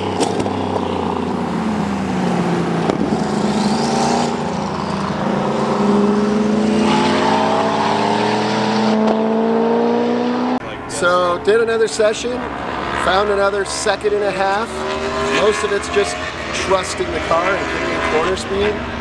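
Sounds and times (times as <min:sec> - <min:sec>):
race car engine: 0:00.0 - 0:19.0.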